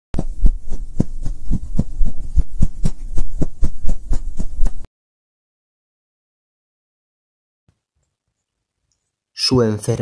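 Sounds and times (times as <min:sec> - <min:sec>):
deep thumps: 0:00.2 - 0:04.8
low hum: 0:00.2 - 0:04.9.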